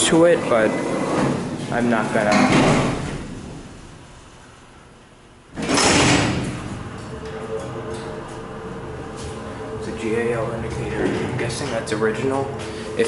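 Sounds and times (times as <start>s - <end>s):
elevator doors and gate closing: 0.0s - 4.0s, 5.5s - 13.0s
steady hum: 0.0s - 13.0s
loud metal clatter: 5.6s - 7.2s.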